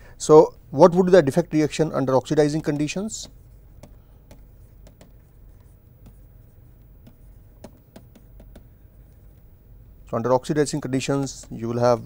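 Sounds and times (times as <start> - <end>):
low steady hum: 0.0 - 12.0
stylus tapping and scratching screen: 2.0 - 12.0.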